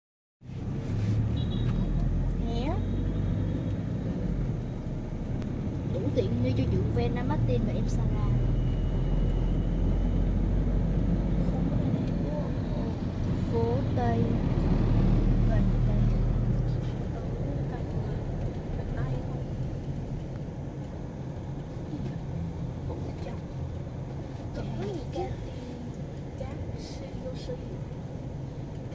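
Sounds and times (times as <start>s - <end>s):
car engine and road noise: 0.4s - 28.9s
street traffic rumble: 0.4s - 28.9s.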